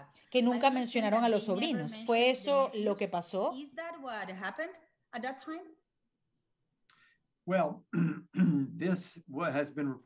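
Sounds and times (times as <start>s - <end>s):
man speaking: 7.4s - 10.0s.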